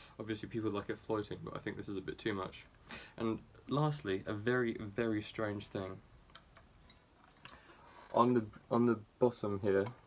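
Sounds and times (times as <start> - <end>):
faint guitar handling clicks: 9.8 - 10.0.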